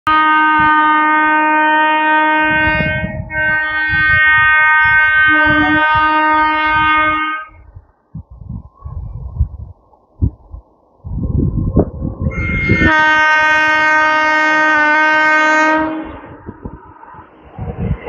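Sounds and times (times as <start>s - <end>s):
electric locomotive horn blasts: 0.1s - 7.7s, 12.2s - 16.3s
faint low rumbling: 2.6s - 12.9s.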